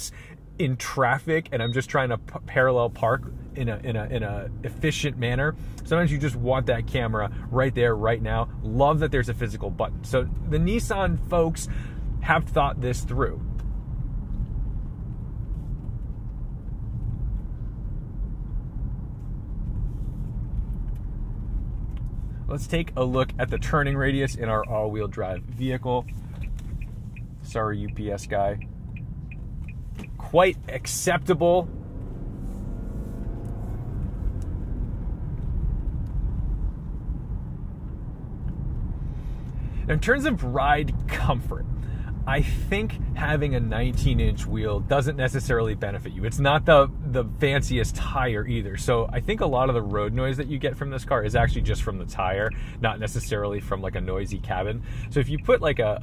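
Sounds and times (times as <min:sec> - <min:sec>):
car engine running: 0:00.0 - 0:56.0
tyre and road noise: 0:00.0 - 0:56.0.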